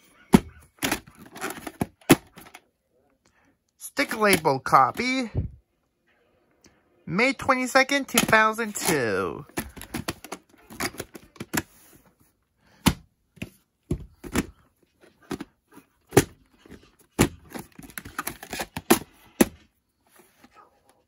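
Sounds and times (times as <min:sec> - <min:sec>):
plastic cassette case clacking: 0:00.3 - 0:02.6, 0:04.0 - 0:05.1, 0:08.1 - 0:11.7, 0:12.8 - 0:19.6.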